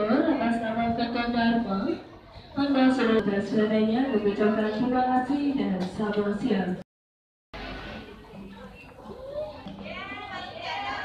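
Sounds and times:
indistinct chatter of shoppers: 0.0 - 6.8, 7.6 - 11.0
child's voice: 9.0 - 9.7.

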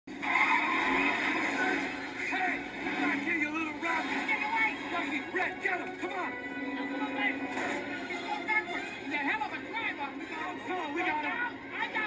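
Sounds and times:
car engine: 0.1 - 6.1.

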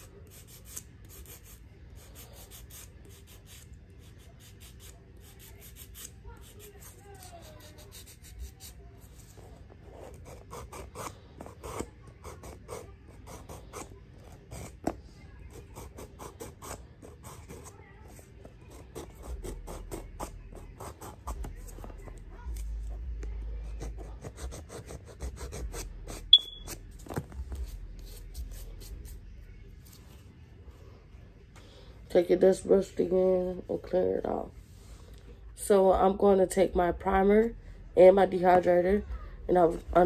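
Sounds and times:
nail file scratching fingernails: 0.0 - 9.3, 9.9 - 14.9, 23.7 - 26.8.

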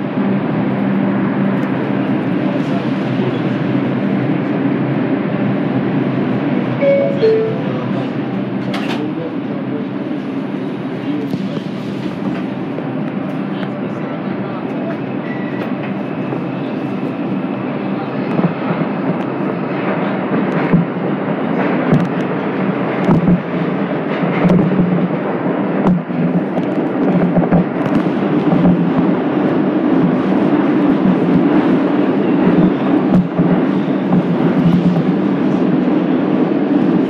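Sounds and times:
subway train rumble: 0.0 - 37.0.

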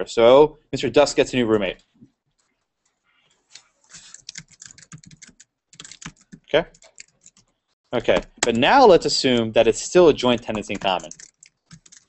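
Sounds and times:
person speaking: 0.0 - 2.1, 3.9 - 7.1, 7.9 - 12.0
typing on computer keyboard: 3.9 - 7.5, 10.2 - 12.0.

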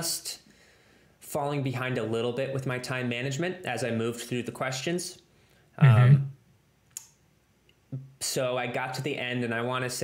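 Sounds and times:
man saying um: 5.8 - 6.3.

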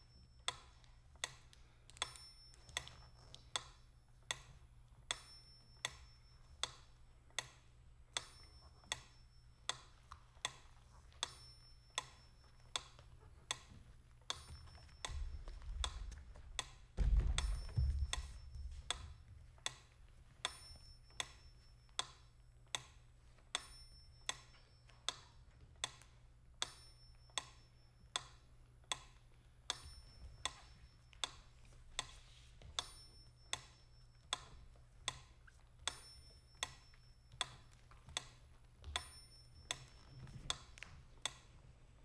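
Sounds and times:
low steady hum: 0.0 - 42.0.

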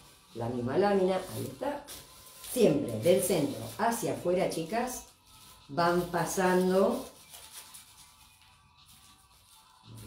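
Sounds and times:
faint soft music: 0.0 - 10.0
plastic bag rubbing on paper: 0.0 - 10.0.

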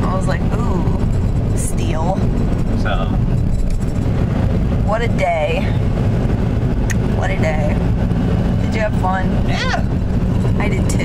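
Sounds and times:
road rumble: 0.0 - 11.0
wind buffeting in car: 0.0 - 11.0.

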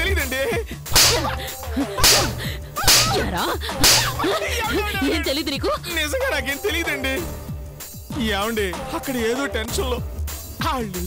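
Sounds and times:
background music: 0.0 - 11.0
hand slapping face: 0.9 - 1.4, 2.0 - 4.4.

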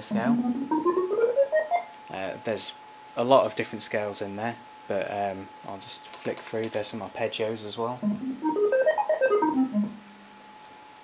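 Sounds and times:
laser harp notes: 0.0 - 1.9, 8.0 - 10.2.

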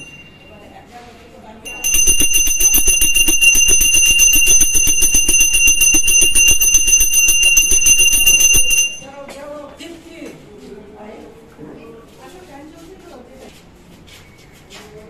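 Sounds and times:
hand bell ringing rapidly: 0.0 - 0.4, 1.7 - 9.1.

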